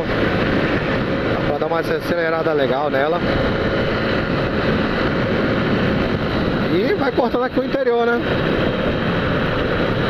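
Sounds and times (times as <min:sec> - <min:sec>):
motorcycle engine cruising: 0:00.0 - 0:10.0
wind rushing on microphone: 0:00.0 - 0:10.0.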